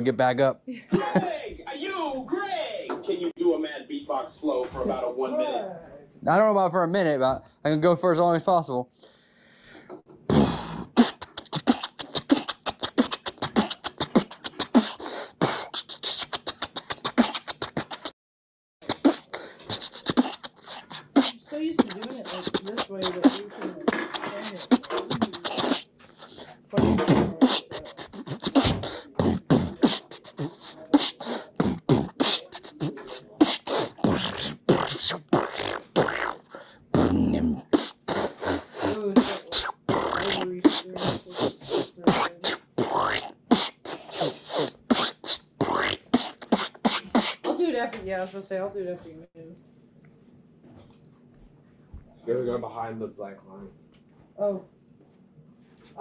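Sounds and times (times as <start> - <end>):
man beatboxing: 10.3 - 18.2, 18.8 - 47.6.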